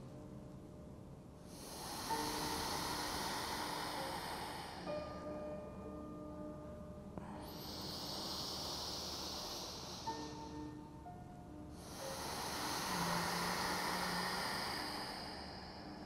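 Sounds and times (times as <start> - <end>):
soft ambient music: 0.0 - 16.0
deep breaths: 1.4 - 6.1, 7.2 - 16.0.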